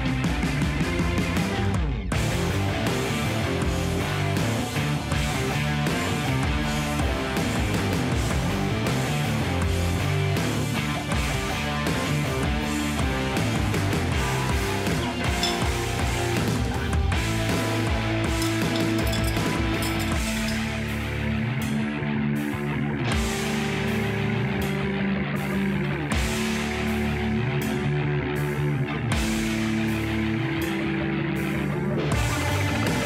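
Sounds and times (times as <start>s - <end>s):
rock music with guitar: 0.0s - 33.0s.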